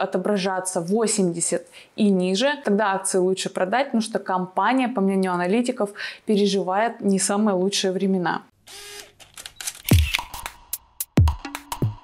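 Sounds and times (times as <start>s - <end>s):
camera shutter clicks: 8.7s - 10.6s
deep electronic kick drum: 11.1s - 12.0s.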